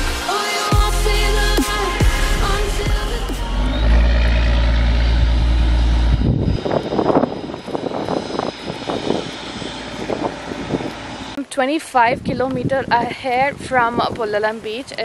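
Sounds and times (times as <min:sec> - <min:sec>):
boat engine drone: 0:00.0 - 0:11.5
deep low hum: 0:00.8 - 0:11.4.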